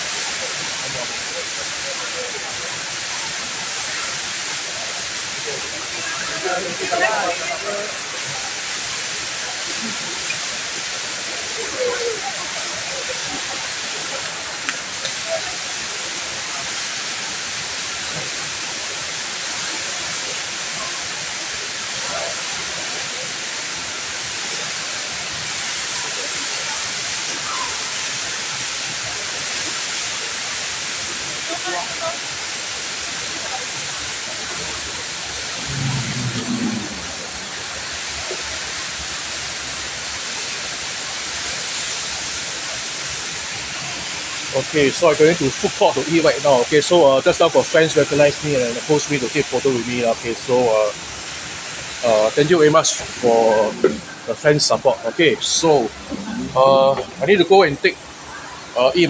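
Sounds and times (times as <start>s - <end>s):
indoor waterfall crashing into pool: 0.0s - 59.0s
low hum: 35.5s - 37.8s.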